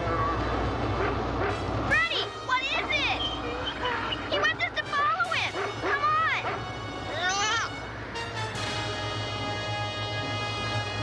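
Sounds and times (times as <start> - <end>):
background music with held chords: 4.9 - 11.0.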